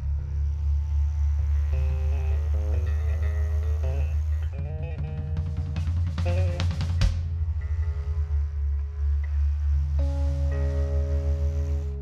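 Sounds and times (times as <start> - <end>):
didgeridoo low drone: 0.0 - 12.0
sustained higher instrument notes: 0.0 - 12.0.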